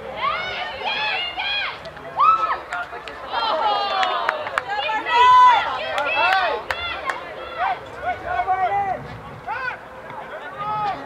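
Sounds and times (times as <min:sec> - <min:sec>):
people shouting: 0:00.0 - 0:02.7, 0:03.3 - 0:09.8.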